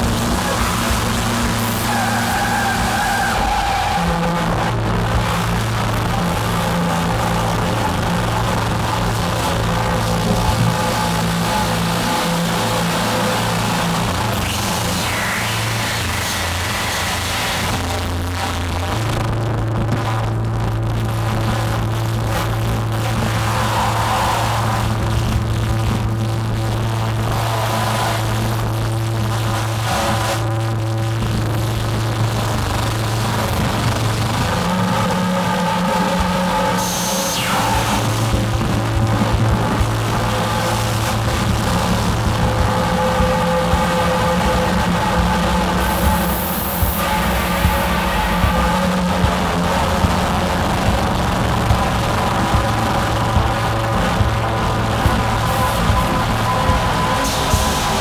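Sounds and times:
dense noisy electronic texture: 0.0 - 58.0
low synthesizer drones: 0.0 - 58.0
drum kit playing: 37.8 - 58.0.

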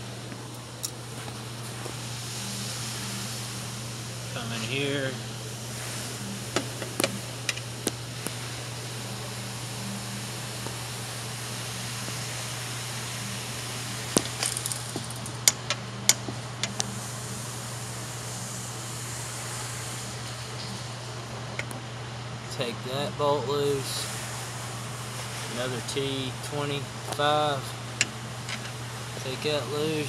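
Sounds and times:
low background hum: 0.0 - 30.0.

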